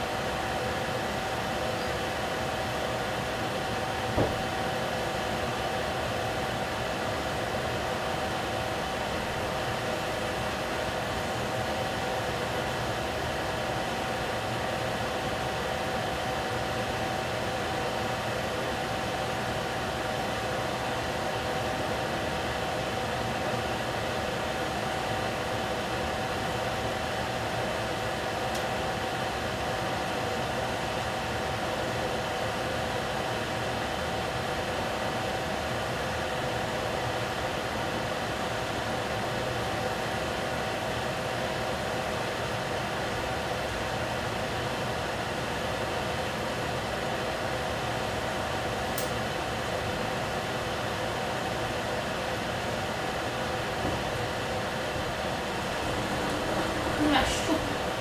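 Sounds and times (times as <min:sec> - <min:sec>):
stove hiss and hum: 0:00.0 - 0:15.7, 0:47.7 - 0:58.0.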